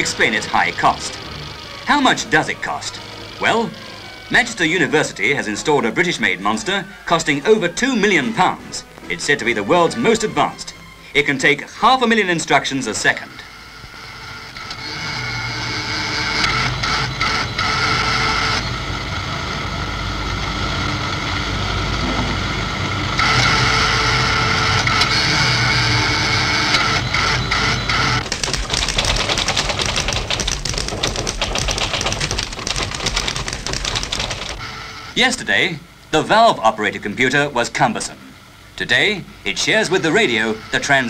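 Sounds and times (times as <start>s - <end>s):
fast dense mechanical clatter: 0.0s - 5.9s, 20.4s - 34.6s
computer equipment whirring and humming: 0.0s - 41.0s.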